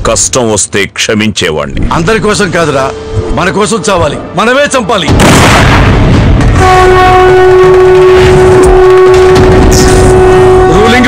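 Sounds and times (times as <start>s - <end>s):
sustained horn-like tone: 2.6s - 4.4s, 6.6s - 11.0s
low rumble: 5.1s - 6.7s
rumbling noise hit: 5.1s - 6.7s.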